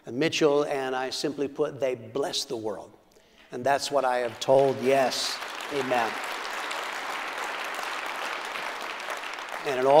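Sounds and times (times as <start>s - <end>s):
congregation applauding: 4.1s - 10.0s.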